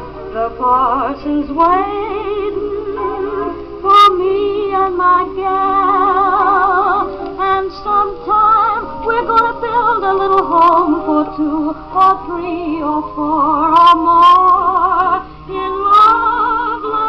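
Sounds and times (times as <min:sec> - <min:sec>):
old record of singing with orchestra: 0:00.0 - 0:17.0.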